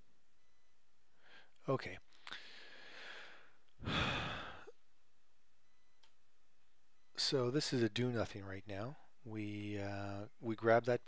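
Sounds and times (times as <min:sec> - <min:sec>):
man sighing: 0:02.3 - 0:04.8.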